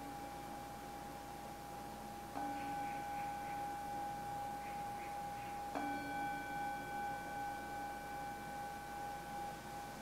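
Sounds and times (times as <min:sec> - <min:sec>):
meditation bell ringing: 0:00.0 - 0:10.0
steady tone: 0:00.0 - 0:10.0.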